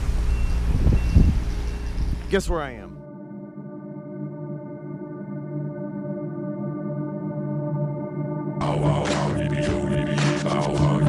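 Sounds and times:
vehicle backup beeper: 0.0 - 2.8
low rumble of traffic: 0.0 - 2.9
wind: 0.0 - 2.9.

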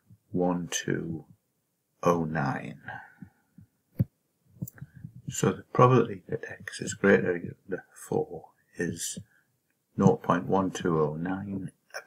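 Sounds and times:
soft low thumps: 3.6 - 5.4.

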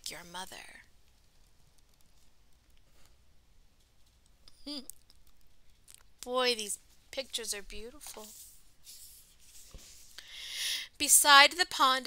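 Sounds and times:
paper rubbing: 8.0 - 10.1.

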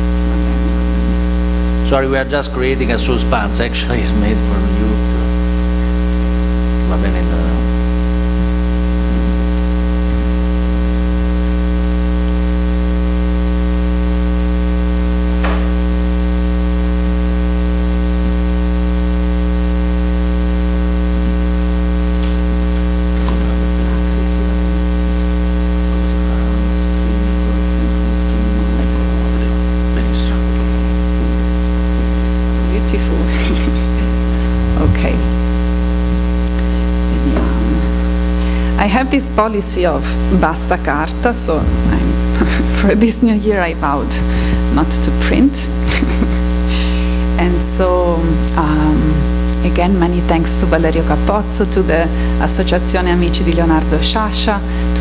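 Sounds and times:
electrical mains hum: 0.0 - 55.0.

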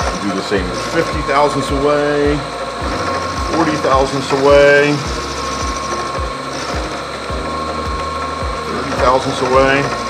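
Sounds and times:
milling machine whine: 0.0 - 10.0.

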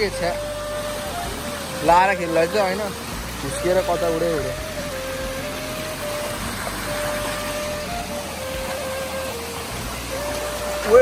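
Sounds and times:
small waterfall rushing: 0.0 - 11.0
thin melody of held notes: 0.0 - 11.0.

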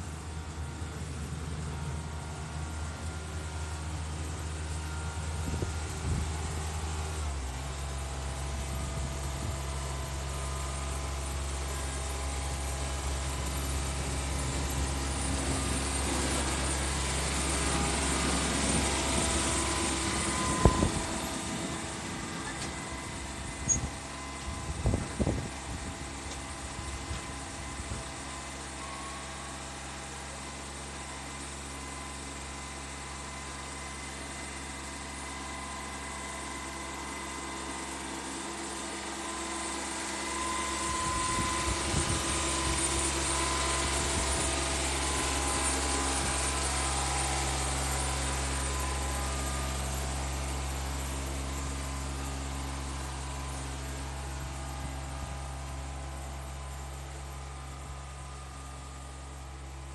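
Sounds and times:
mower engine running: 0.0 - 59.9.

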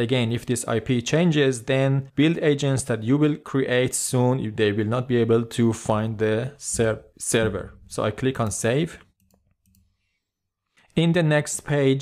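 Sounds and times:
computer mouse clicks: 8.4 - 10.0.

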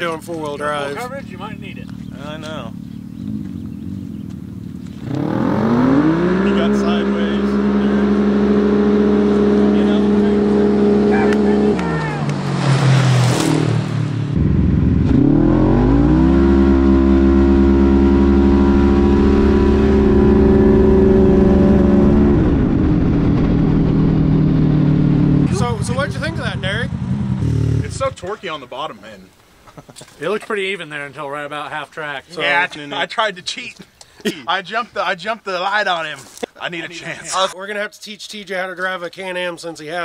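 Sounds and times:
utv engines revving: 0.0 - 28.4.

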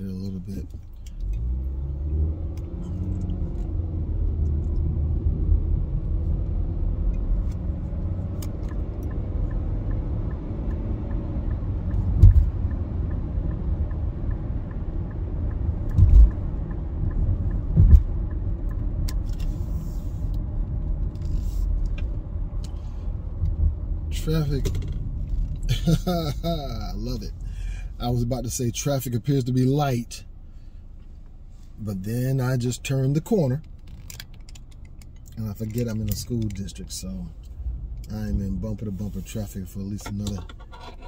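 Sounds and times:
car road and engine rumble: 0.0 - 41.0
faint regular ticking: 8.6 - 19.2
short dull thumps: 15.4 - 18.4.

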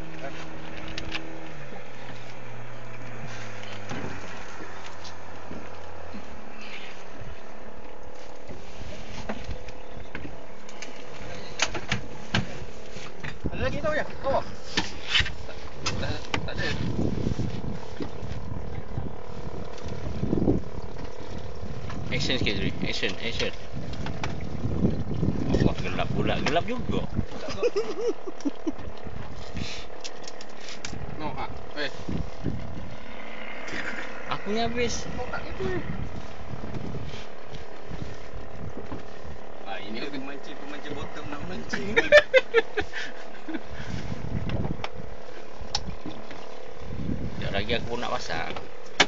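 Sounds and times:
boat engine droning: 0.0 - 49.0
sea and wind noise: 0.0 - 49.0.

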